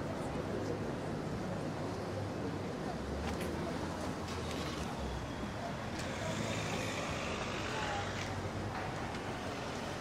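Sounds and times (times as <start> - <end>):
faint voices of passers-by: 0.0 - 10.0
street traffic hum: 0.0 - 10.0.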